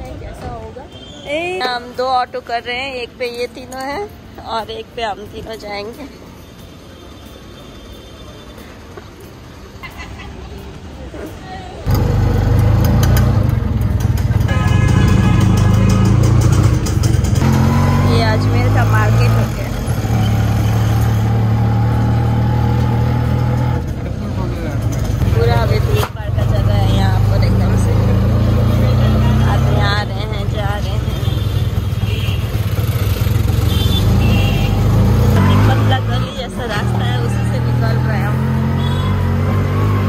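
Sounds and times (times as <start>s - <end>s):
auto-rickshaw engine droning: 11.8s - 40.0s.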